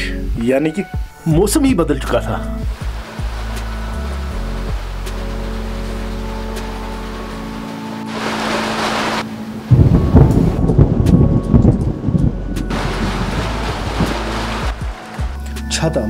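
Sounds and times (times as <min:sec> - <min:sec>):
background music low tones: 0:00.0 - 0:16.0
rain noise: 0:02.5 - 0:15.6
thunder crack and rumble: 0:09.7 - 0:15.0.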